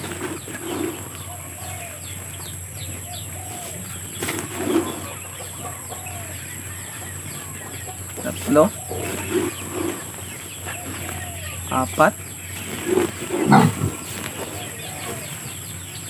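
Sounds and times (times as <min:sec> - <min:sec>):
plastic scoop scraping feed: 0:00.0 - 0:01.6, 0:04.2 - 0:05.2, 0:08.3 - 0:11.2, 0:12.5 - 0:14.6
birds chirping: 0:00.0 - 0:16.0
chickens clucking: 0:00.0 - 0:16.0.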